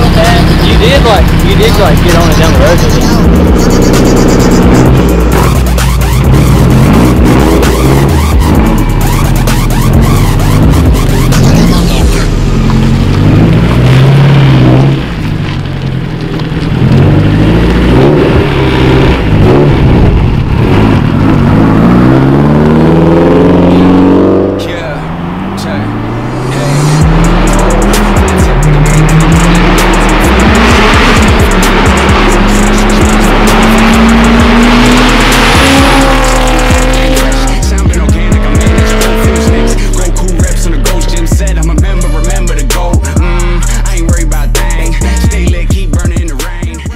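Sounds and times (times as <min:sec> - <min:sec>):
car engine revving: 0:00.0 - 0:46.9.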